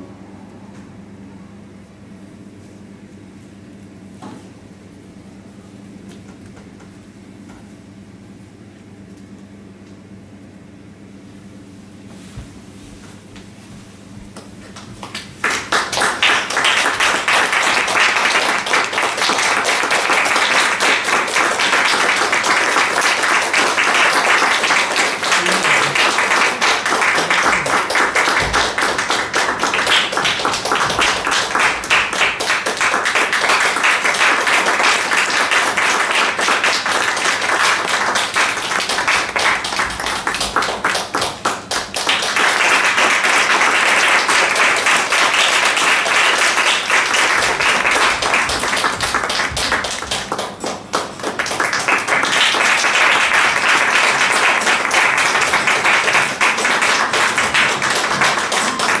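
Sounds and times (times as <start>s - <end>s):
audience applause: 14.7s - 59.0s.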